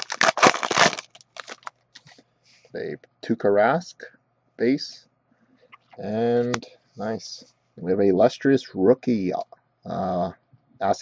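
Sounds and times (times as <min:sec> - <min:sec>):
foil wrapper crinkling: 0:00.0 - 0:02.2.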